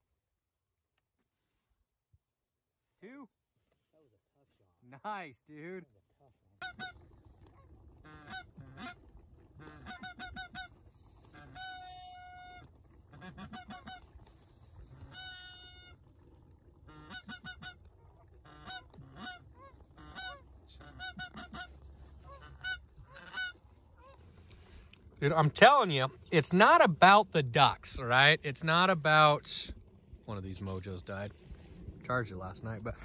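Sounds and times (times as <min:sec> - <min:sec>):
geese honking: 0:08.0 - 0:09.0, 0:09.6 - 0:10.7, 0:11.3 - 0:14.2, 0:14.9 - 0:16.0, 0:16.8 - 0:24.3.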